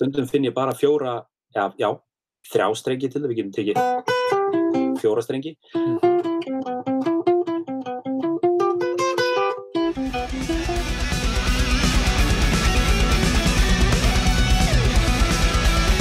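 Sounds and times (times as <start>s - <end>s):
acoustic guitar picking single notes: 3.8s - 5.0s, 5.7s - 16.0s
heavy metal band music: 9.9s - 16.0s.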